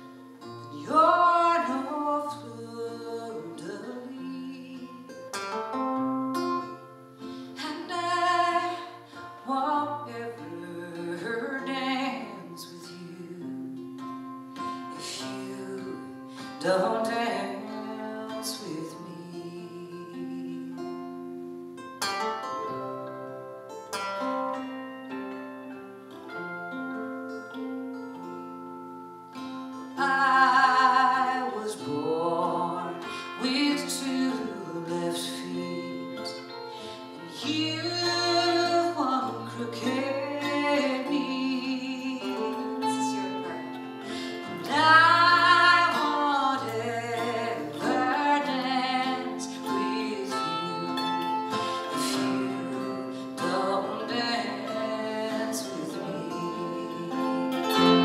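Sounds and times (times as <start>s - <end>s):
guitars: 0.0s - 58.0s
mandolin: 0.0s - 58.0s
voices singing: 30.0s - 58.0s.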